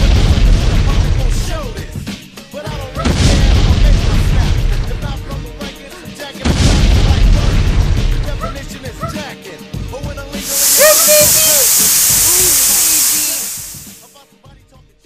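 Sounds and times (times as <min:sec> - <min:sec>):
steam hissing: 0:10.4 - 0:14.1.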